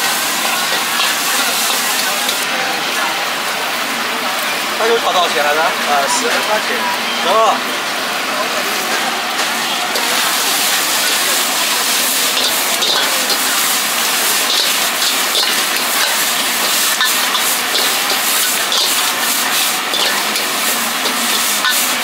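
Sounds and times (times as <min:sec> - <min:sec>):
noodles sizzling in a wok: 0:00.0 - 0:22.0
ladle scraping against wok: 0:00.1 - 0:02.5, 0:09.9 - 0:22.0.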